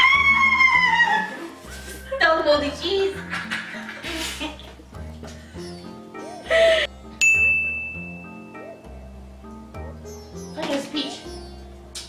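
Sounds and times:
bright ding sound effect: 7.2 - 8.5.

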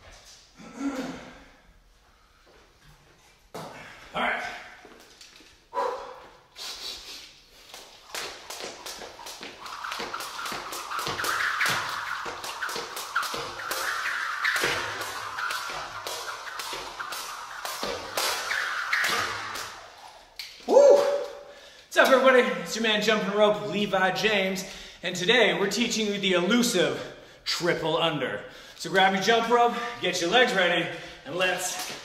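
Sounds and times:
jump rope slapping rubber floor: 7.6 - 21.4, 31.7 - 32.0.

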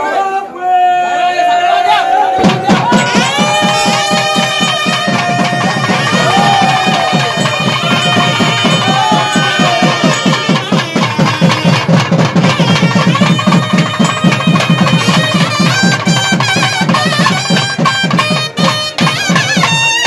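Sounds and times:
fast steady drumming: 2.4 - 20.0
shrill reed wind instrument: 2.7 - 20.0.

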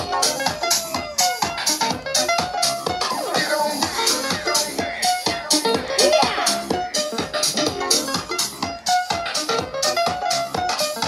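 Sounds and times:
house music over loudspeakers: 0.0 - 11.0.

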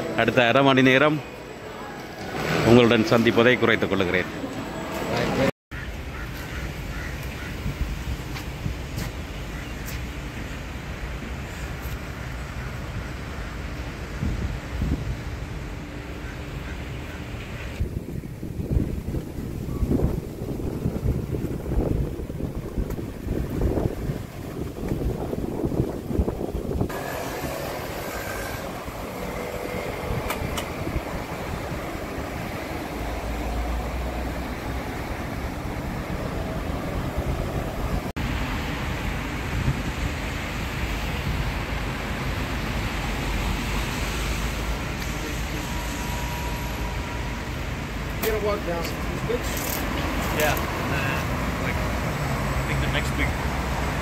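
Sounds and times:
steady outdoor wind: 0.0 - 54.0
wind buffeting microphone: 14.1 - 15.4, 17.5 - 43.5.

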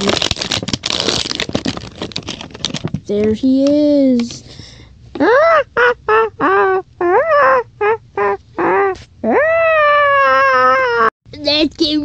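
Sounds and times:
person making high-pitched cries: 5.2 - 11.1.

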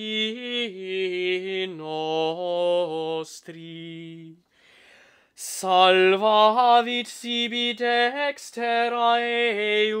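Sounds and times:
man singing chant unaccompanied: 0.0 - 4.4, 5.4 - 10.0
singer breathing in: 4.5 - 5.4.

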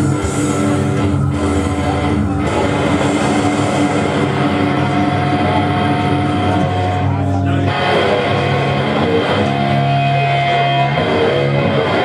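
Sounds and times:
death metal played live: 0.0 - 12.0.

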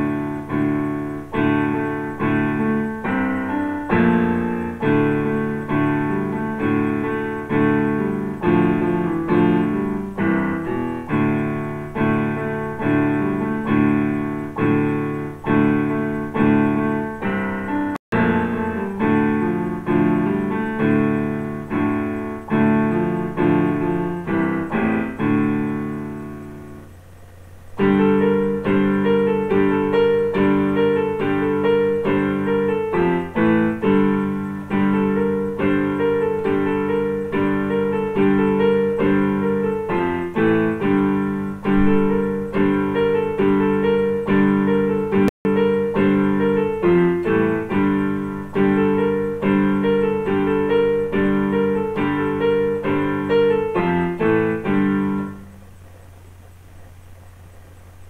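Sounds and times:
electronic keyboard piano chords: 0.0 - 58.0.

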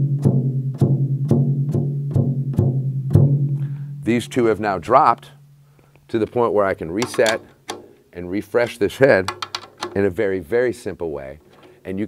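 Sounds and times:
drum head tapped by hand: 7.0 - 8.0, 9.2 - 10.0.

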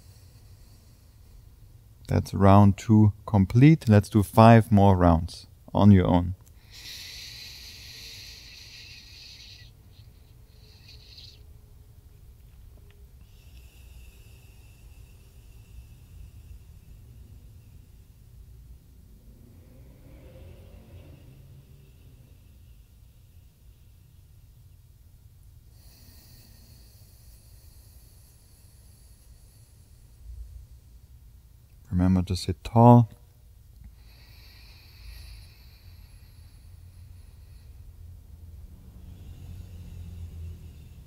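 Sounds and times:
low steady hum: 0.0 - 41.0
slow breathing through nostril: 13.2 - 24.6, 33.8 - 41.0.

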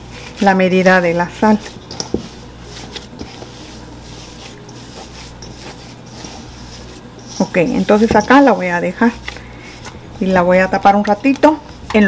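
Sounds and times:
hands squishing dough: 0.0 - 12.0.

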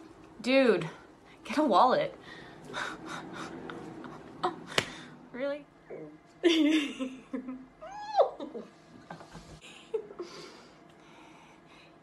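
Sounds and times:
woman giggling: 6.4 - 10.4.

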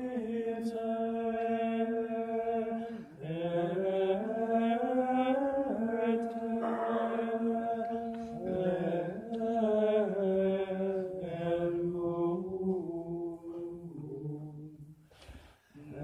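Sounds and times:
unaccompanied plainchant singing: 0.0 - 15.0, 15.8 - 16.0.

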